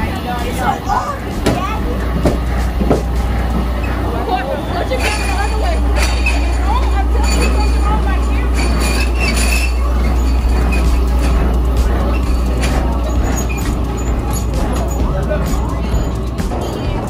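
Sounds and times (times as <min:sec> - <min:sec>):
background music: 0:00.0 - 0:17.0
background voices: 0:00.0 - 0:17.0
steady low rumble: 0:00.0 - 0:17.0.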